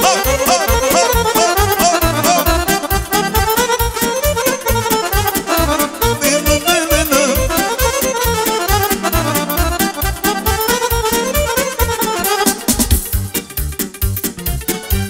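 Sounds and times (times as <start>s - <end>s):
saxophone: 0.0s - 13.3s
accordions playing melody: 0.0s - 15.0s
fast keyboard beat: 0.0s - 15.0s.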